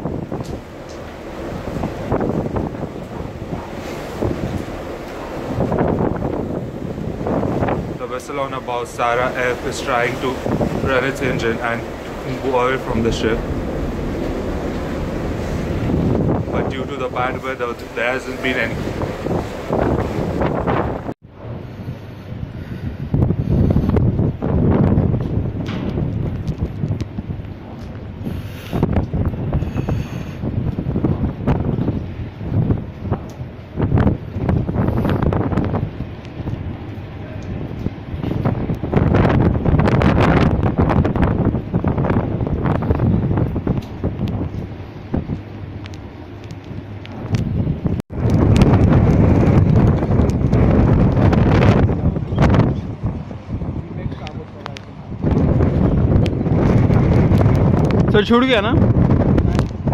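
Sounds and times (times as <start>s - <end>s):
strong wind buffeting microphone: 0.0s - 59.9s.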